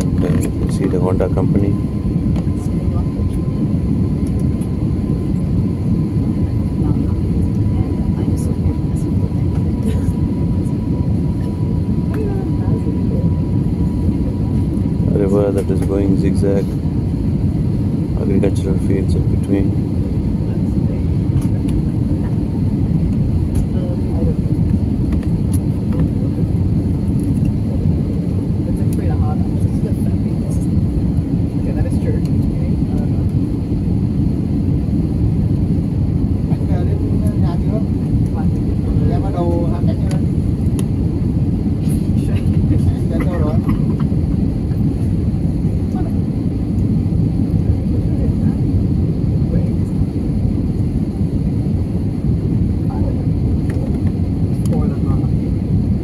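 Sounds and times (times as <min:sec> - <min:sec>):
airliner cabin engine roar: 0:00.0 - 0:56.0.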